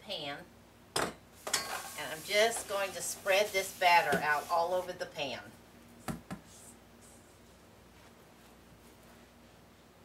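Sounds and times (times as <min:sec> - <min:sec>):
metal kitchenware clinking: 0:01.0 - 0:02.0.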